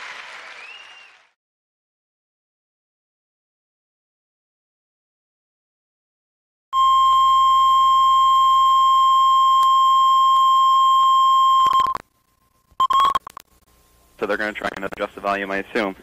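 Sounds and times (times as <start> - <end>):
steady test tone beep: 6.8 - 12.0, 12.8 - 13.4
clicks: 12.9 - 13.6.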